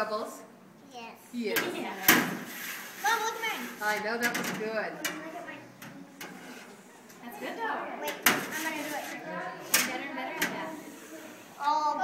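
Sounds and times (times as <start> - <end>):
background talk: 0.0 - 12.0.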